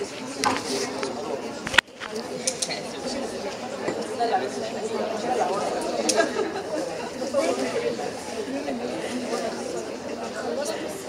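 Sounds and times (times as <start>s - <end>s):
students chattering: 0.0s - 11.0s.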